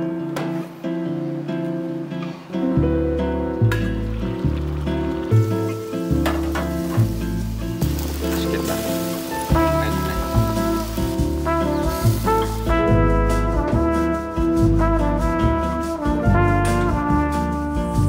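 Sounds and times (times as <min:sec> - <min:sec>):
instrumental background music: 0:00.0 - 0:18.0.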